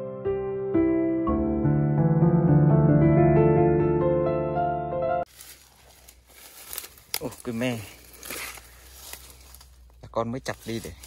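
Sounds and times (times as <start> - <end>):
dry twigs and leaves rustling: 5.3 - 11.0.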